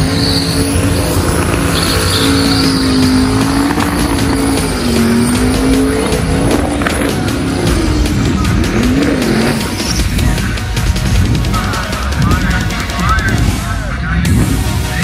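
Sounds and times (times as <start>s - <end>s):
tyres spinning on pavement: 0.0s - 13.3s
engine at high revs: 0.0s - 15.0s.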